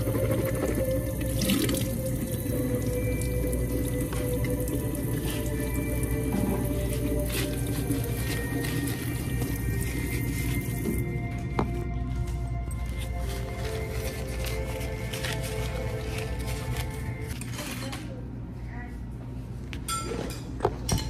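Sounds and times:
water running from faucet: 0.0 - 11.2.

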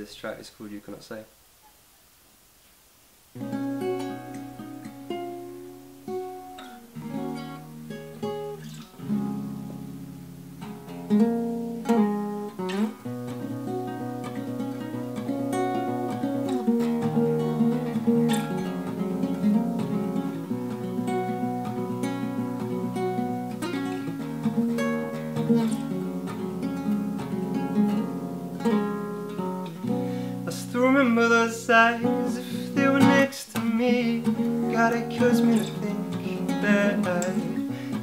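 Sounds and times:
fingerpicked acoustic guitar: 3.3 - 38.0.

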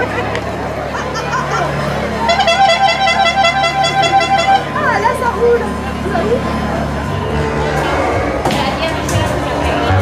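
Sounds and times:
crowd chatter: 0.0 - 10.0
horn tooting short notes: 2.2 - 5.1, 7.1 - 8.8.

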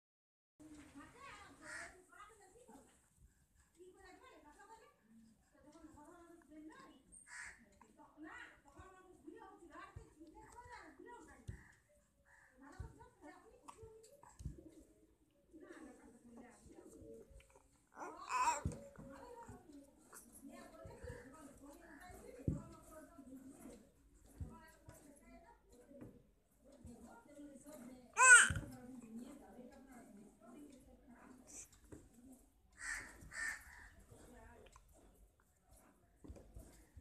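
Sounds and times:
infant cooing and babbling: 17.5 - 19.1, 28.2 - 28.6
infant high-pitched vocal sound: 28.2 - 28.6.

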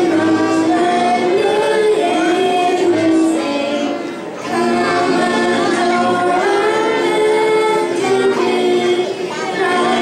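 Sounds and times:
children singing: 0.0 - 10.0
keyboard violin and cello: 0.0 - 10.0.

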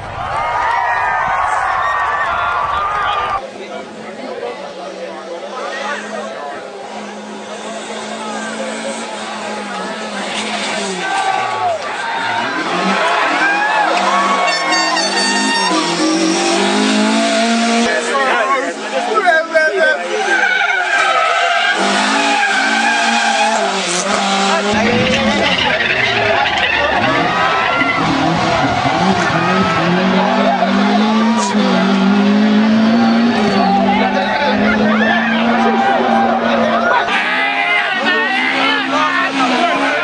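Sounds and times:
onlookers' voices: 0.0 - 40.0
rally car engine revving: 3.7 - 40.0
tyres squealing: 19.2 - 40.0
deep rumble: 24.7 - 30.1.

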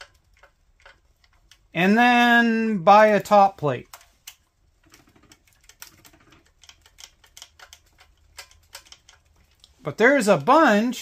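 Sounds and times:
small metal clicks and taps: 0.0 - 1.7, 3.8 - 9.8.

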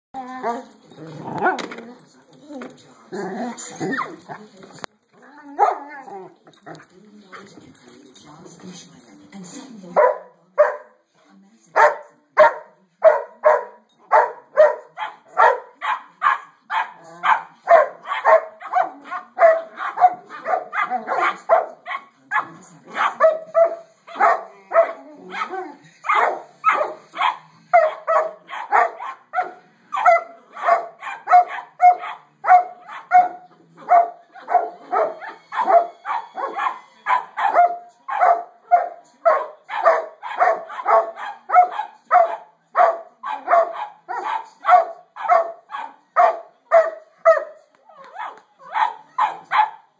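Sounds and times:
dogs whining: 3.2 - 4.3
dogs barking: 5.4 - 6.3, 10.0 - 11.0, 11.8 - 49.9.

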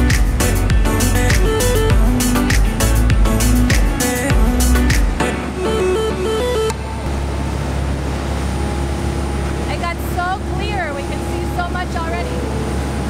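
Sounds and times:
boat engines rumbling: 0.0 - 13.0
churning wake water: 0.0 - 13.0.

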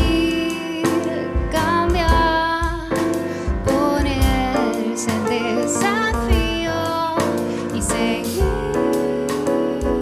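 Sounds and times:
drum kit: 0.0 - 10.0
piano: 0.0 - 10.0.

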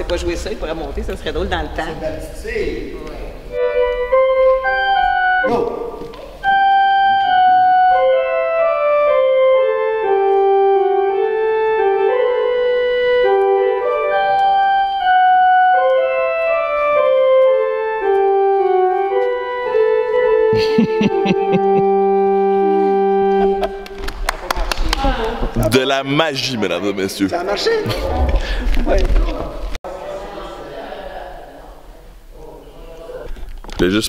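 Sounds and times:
organ playing slow melody: 3.5 - 24.0.

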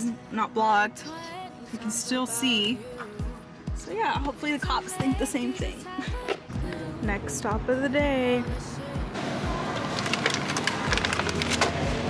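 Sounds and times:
background music with steady beat: 0.0 - 12.0
plastic packs clicking and crackling: 9.7 - 12.0.

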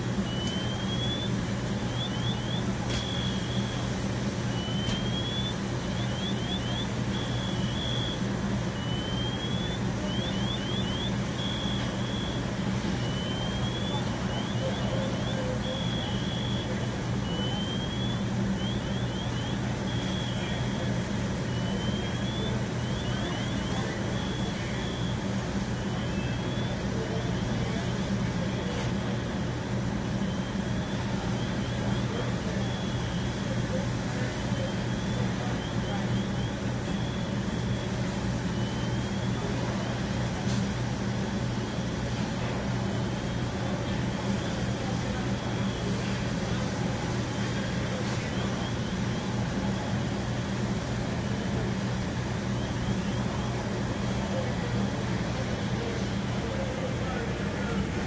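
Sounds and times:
engine idling hum: 0.0 - 58.0
electronic car alarm: 0.2 - 40.0.

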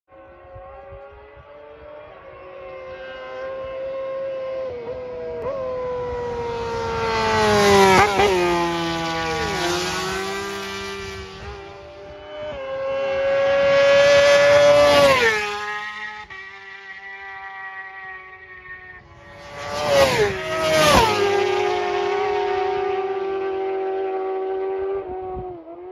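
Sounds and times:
racing motorcycles passing: 0.1 - 25.9.

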